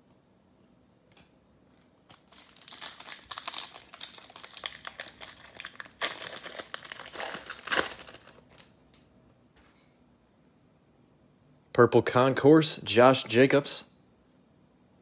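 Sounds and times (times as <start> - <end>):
foil pack crinkling: 2.0 - 8.8
foil ripping: 2.1 - 8.7.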